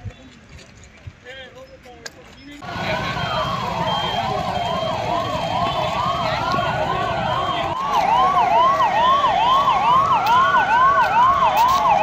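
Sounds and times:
police siren fast yelp: 2.6 - 12.0
slower siren wail: 2.6 - 12.0.

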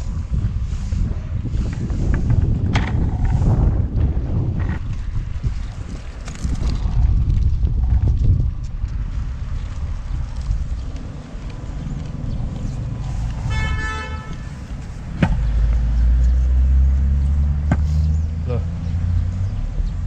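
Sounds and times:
street traffic: 0.0 - 20.0
wind buffeting microphone: 0.0 - 20.0
vehicle horn toot: 13.4 - 14.6.

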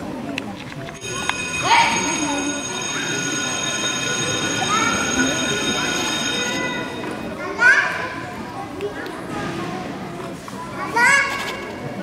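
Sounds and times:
high electronic ringing tone: 1.0 - 7.4
children's voices: 1.0 - 12.0.

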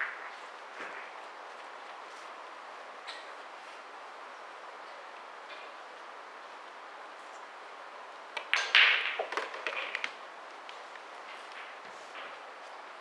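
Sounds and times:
pool balls clacking: 8.3 - 10.2
ball rattling into pocket: 8.4 - 10.2
cue tip hitting ball: 8.4 - 10.2.

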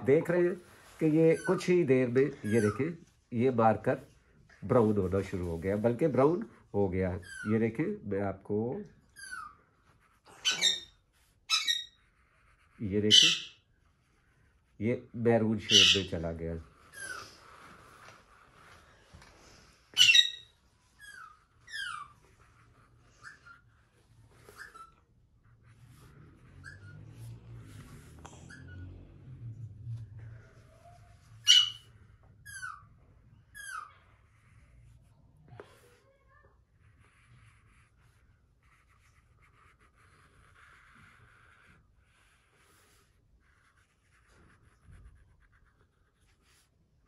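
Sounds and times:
marker nib squeaking on paper: 0.2 - 3.5, 7.1 - 8.0, 9.0 - 14.8, 15.4 - 18.8, 19.6 - 29.4, 30.2 - 46.7
bird calling harshly: 10.4 - 10.9, 31.4 - 31.8.

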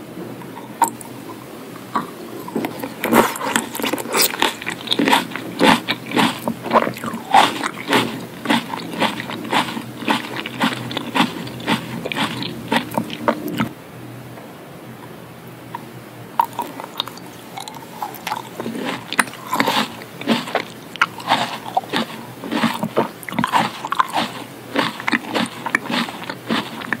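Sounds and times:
wet chewing: 0.6 - 13.7, 16.4 - 27.0.

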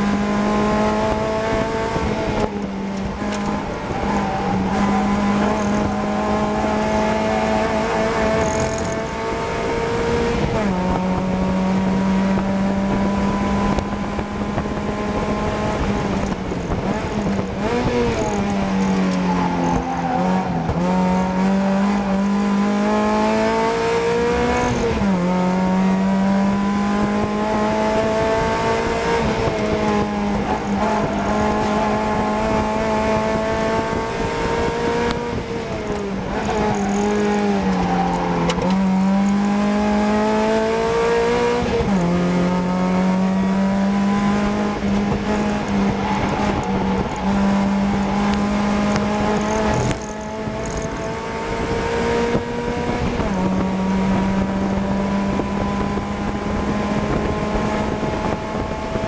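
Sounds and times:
race car engine revving: 0.0 - 59.0.

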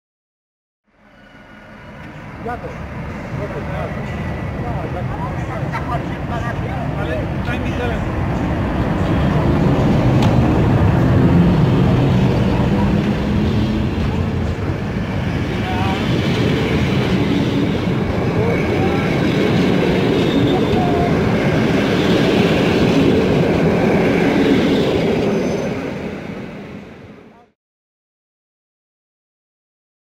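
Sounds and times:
train wheels rattling on rails: 1.9 - 26.8.

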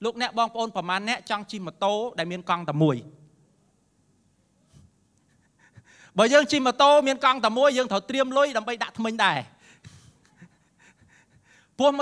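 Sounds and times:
man speaking into a microphone: 0.0 - 3.2, 6.1 - 9.6, 11.8 - 12.0.

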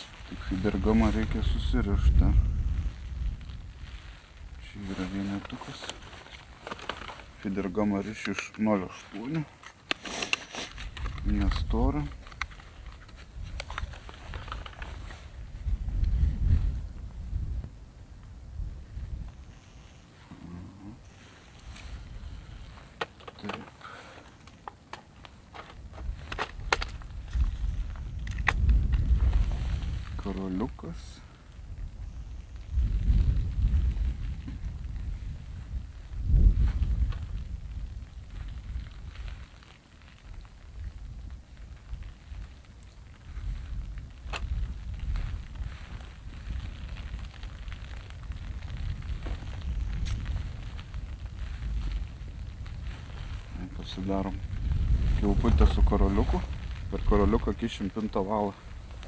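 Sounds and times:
wind buffeting microphone: 0.0 - 8.0, 10.7 - 19.9, 21.0 - 23.0, 25.5 - 59.0.

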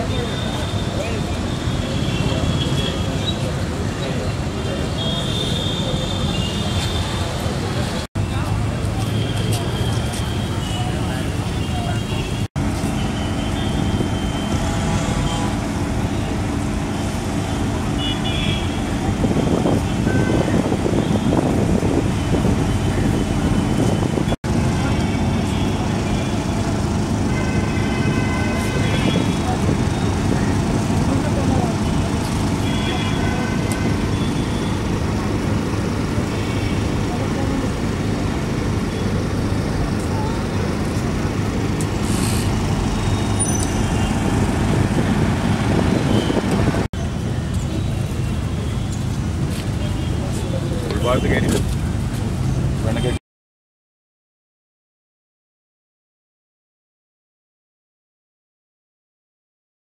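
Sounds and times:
crowd voices: 0.0 - 12.5, 28.5 - 52.2.

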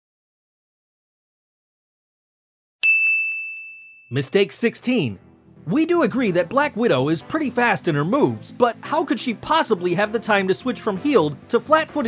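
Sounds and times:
bright ding: 2.8 - 4.2.

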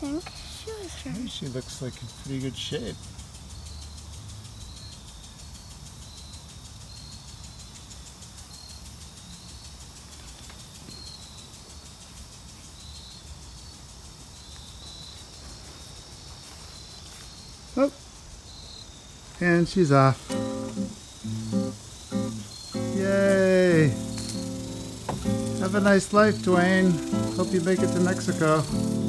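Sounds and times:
cricket chirping: 0.0 - 29.0.

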